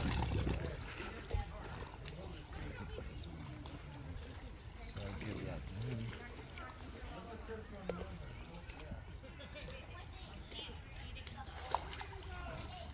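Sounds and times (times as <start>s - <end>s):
background chatter: 0.0s - 12.9s.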